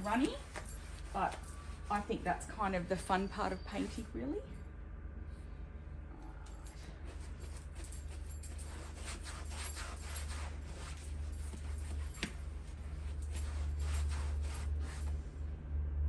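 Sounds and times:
steady low hum: 0.0 - 16.0
paintbrush scrubbing fabric: 7.3 - 15.2.

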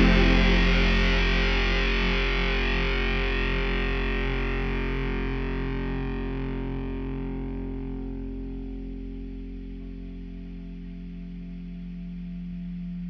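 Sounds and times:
distorted electric guitar chord: 0.0 - 3.6.

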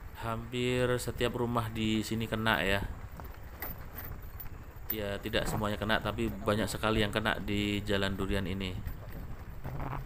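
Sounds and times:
motorcycle riding slowly: 0.0 - 10.0
rattles from bumps: 1.1 - 10.0.

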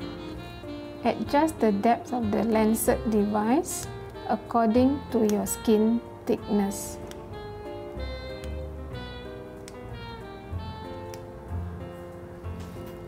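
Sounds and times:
soft instrumental music: 0.0 - 13.0.

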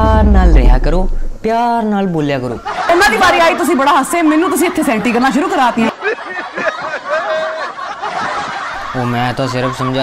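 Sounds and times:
man laughing heartily: 5.9 - 10.0.

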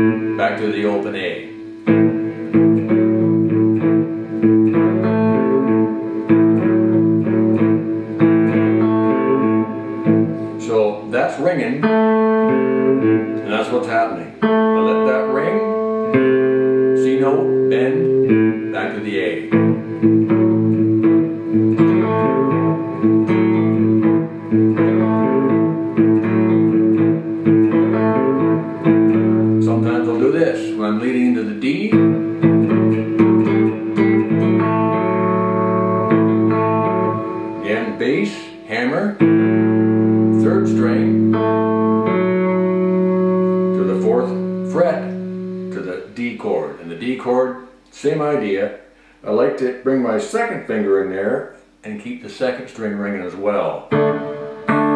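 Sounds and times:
fingerstyle electric guitar blues: 0.0 - 47.6, 52.8 - 54.9.

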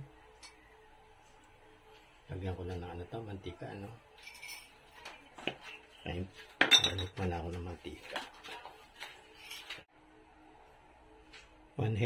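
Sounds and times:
cookware clink: 6.6 - 7.2.

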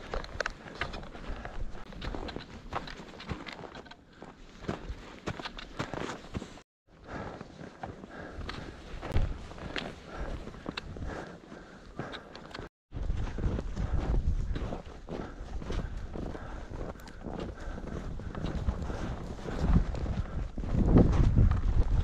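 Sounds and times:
footsteps crunching in snow: 0.0 - 12.2, 12.9 - 22.0
wind buffeting microphone: 12.9 - 22.0.

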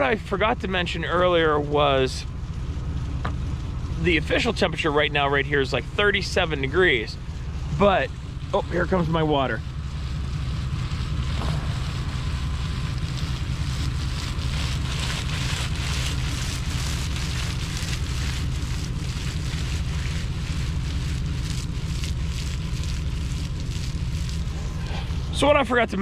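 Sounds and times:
low engine hum: 0.0 - 26.0
sprinkler water spray hissing: 4.0 - 26.0.

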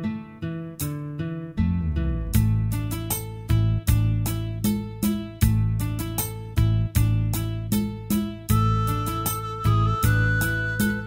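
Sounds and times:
guitar picking single notes: 0.0 - 11.0
deep bass notes: 1.5 - 11.0.

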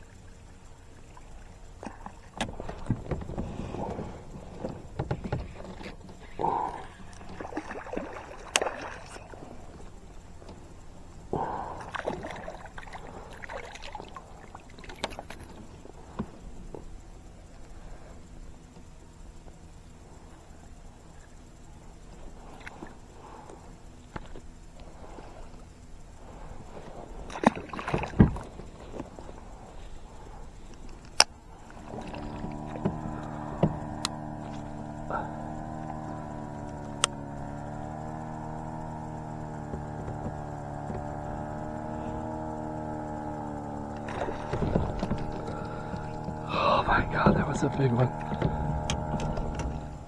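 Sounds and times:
water splashing: 0.0 - 9.9, 11.4 - 16.2, 26.4 - 30.7, 31.6 - 33.7, 43.7 - 50.0
gear knocking in kayak: 0.0 - 50.0
mechanical drone: 0.0 - 50.0.

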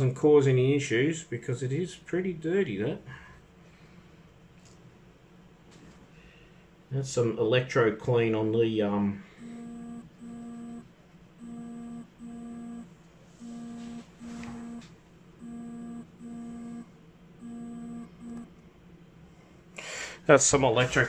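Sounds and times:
pulsing electrical buzz: 9.4 - 18.5.

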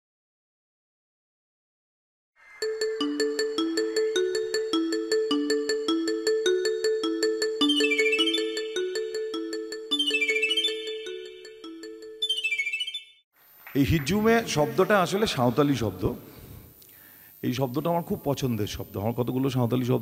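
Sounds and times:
electronic intro jingle: 2.6 - 13.2
high glittering chimes: 2.6 - 13.2.

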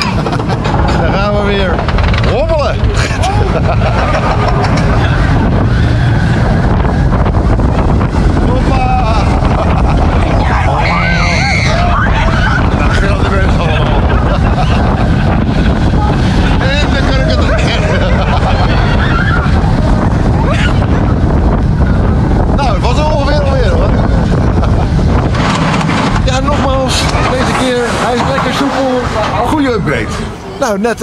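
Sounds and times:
riders laughing and shouting: 0.0 - 30.4
roller coaster train rumbling: 0.0 - 31.0
wind rushing over microphone: 0.0 - 31.0.

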